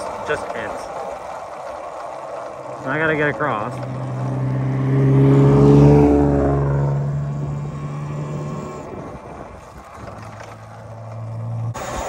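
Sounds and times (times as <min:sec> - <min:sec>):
wind and rolling noise: 0:00.0 - 0:12.0.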